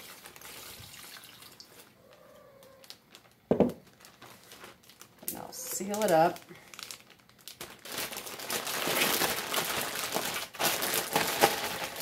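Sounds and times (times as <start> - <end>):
plastic bag crinkling: 0.0 - 1.9, 2.6 - 12.0.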